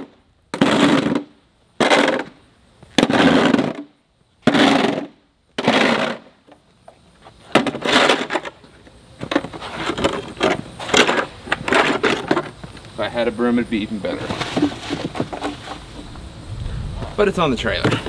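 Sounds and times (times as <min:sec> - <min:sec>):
plastic shovel scraping concrete: 0:00.6 - 0:02.4, 0:03.0 - 0:03.9, 0:04.5 - 0:06.3, 0:07.4 - 0:08.5, 0:09.2 - 0:12.6, 0:14.1 - 0:16.0.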